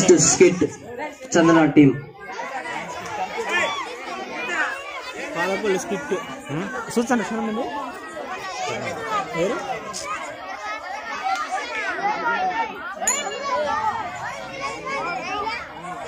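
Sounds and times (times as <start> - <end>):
children chattering and calling out: 0.0 - 16.0.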